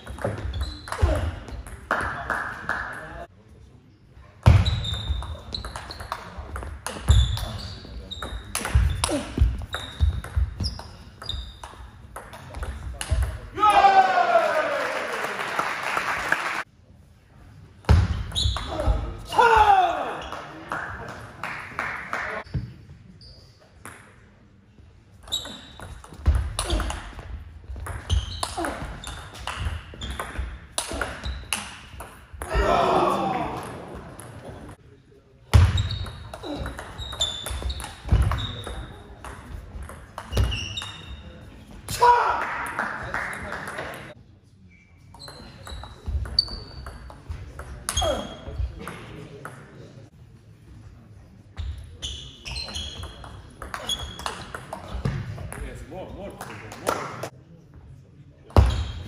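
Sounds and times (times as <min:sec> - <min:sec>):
people shouting: 0:13.6 - 0:14.8, 0:18.8 - 0:20.2, 0:32.5 - 0:33.7, 0:41.9 - 0:42.4.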